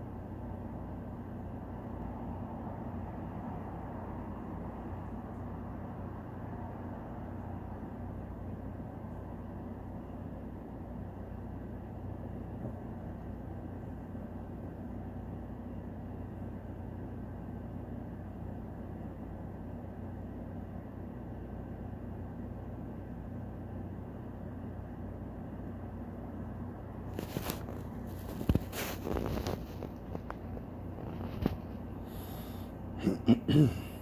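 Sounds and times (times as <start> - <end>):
low hum of fan or appliance: 0.0 - 34.0
short rustles: 27.1 - 32.4.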